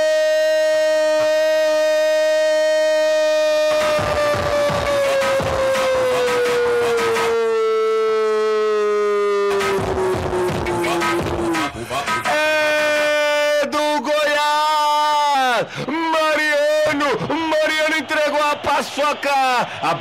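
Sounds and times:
music with a beat: 0:03.4 - 0:07.5, 0:09.5 - 0:13.0
man shouting goal: 0:10.7 - 0:20.0.

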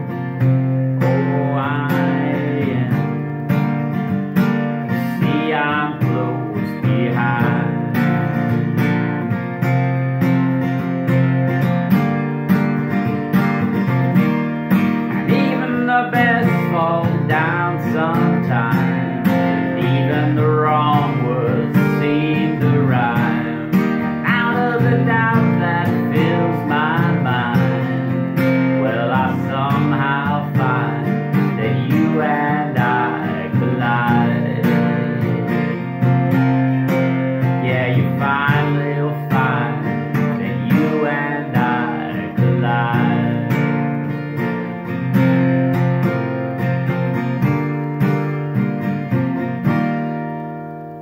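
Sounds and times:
man singing: 0:00.0 - 0:03.7, 0:04.4 - 0:09.1, 0:15.1 - 0:47.0
acoustic guitar strummed: 0:00.0 - 0:51.0.

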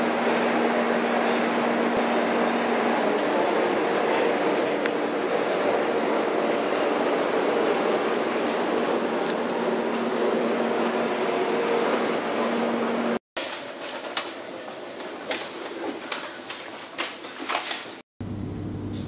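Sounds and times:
train rushing noise and hum: 0:00.0 - 0:13.2.

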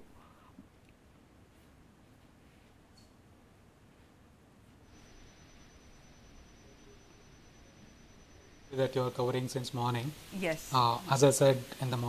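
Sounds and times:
faint line hiss: 0:00.0 - 0:12.0
thin high-pitched tone: 0:04.9 - 0:12.0.

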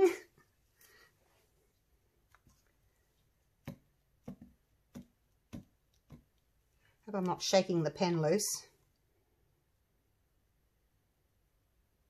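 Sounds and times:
silicone mold tapping on board: 0:03.6 - 0:06.4.

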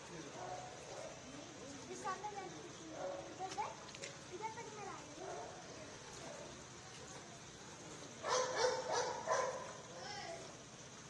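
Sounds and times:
dog barking: 0:00.4 - 0:01.2, 0:03.0 - 0:03.3, 0:05.2 - 0:05.6, 0:08.2 - 0:09.8.

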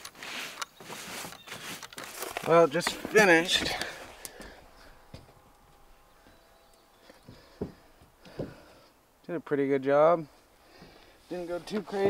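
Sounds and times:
faint rustle: 0:00.0 - 0:09.0, 0:10.2 - 0:12.0.

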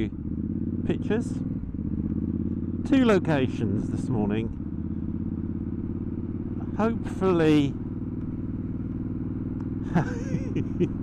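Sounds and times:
motorcycle engine cruising: 0:00.0 - 0:11.0.

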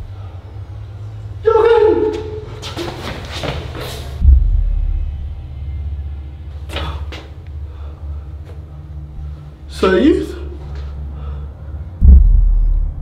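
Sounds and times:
low suspense drone: 0:00.0 - 0:02.6, 0:04.0 - 0:13.0
deep boom hit: 0:04.2 - 0:05.4, 0:12.0 - 0:13.0.

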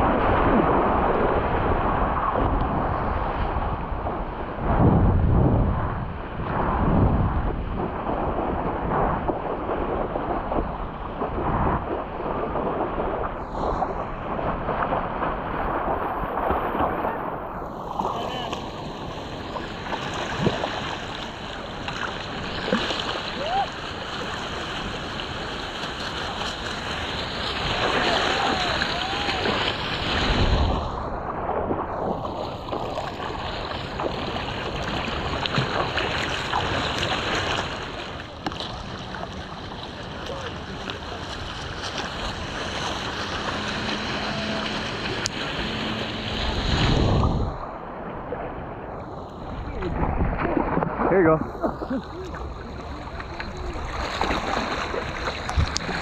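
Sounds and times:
ocean water sloshing and lapping: 0:00.0 - 0:56.0
wind buffeting microphone: 0:00.0 - 0:56.0.

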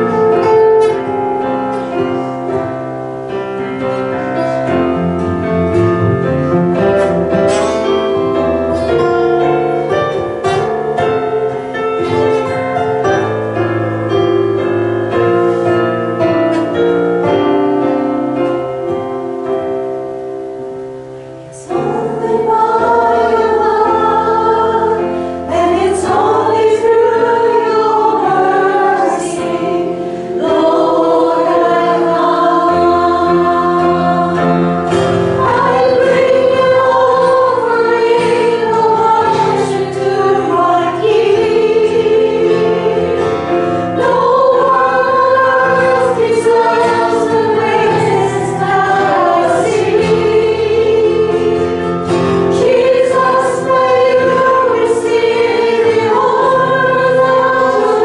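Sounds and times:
sustained instrumental accompaniment: 0:00.0 - 0:58.0
group singing a worship song: 0:21.5 - 0:58.0.

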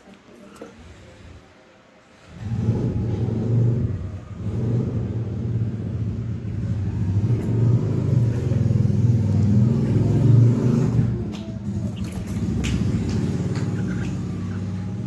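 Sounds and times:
vehicle engine rumbling: 0:02.1 - 0:15.0.

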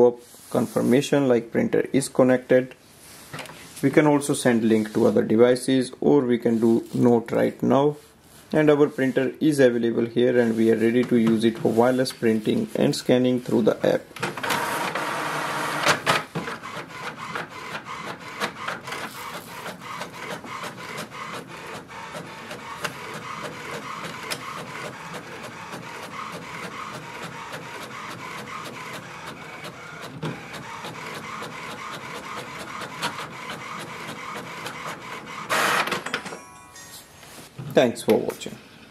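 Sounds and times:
inkjet printer printing: 0:14.2 - 0:36.2.

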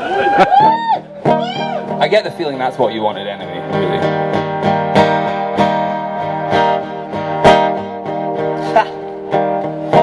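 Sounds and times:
acoustic guitar strumming: 0:00.6 - 0:10.0.

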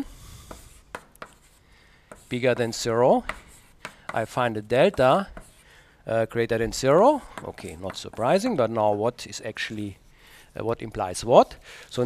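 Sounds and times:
chalk scratching on blackboard: 0:00.2 - 0:05.6
chalk tapping board: 0:00.4 - 0:05.6, 0:07.3 - 0:08.4.

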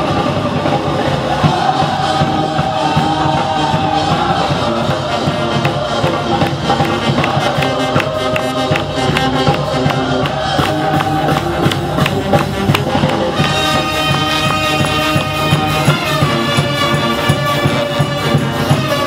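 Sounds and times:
brass band playing: 0:00.0 - 0:19.0
high horn notes: 0:00.0 - 0:19.0
percussion strokes: 0:00.0 - 0:19.0.

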